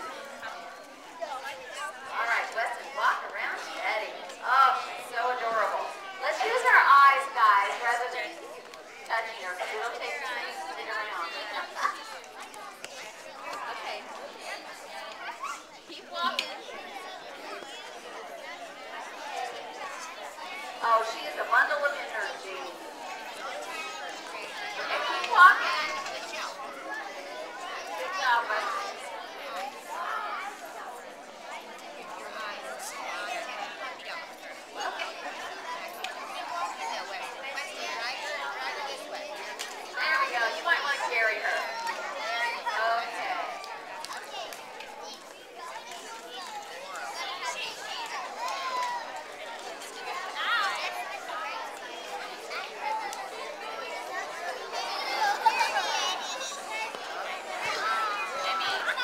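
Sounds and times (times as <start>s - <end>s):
children chattering: 0.0s - 59.0s.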